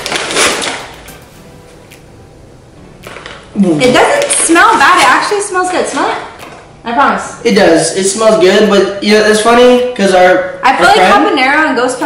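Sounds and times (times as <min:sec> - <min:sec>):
paper bag tearing: 0:00.0 - 0:01.2, 0:03.0 - 0:05.2
paper rustling: 0:00.0 - 0:01.3.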